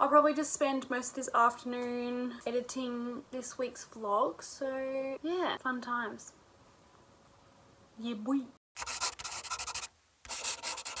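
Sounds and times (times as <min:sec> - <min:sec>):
scratchy rubbing noise: 0:08.8 - 0:11.0.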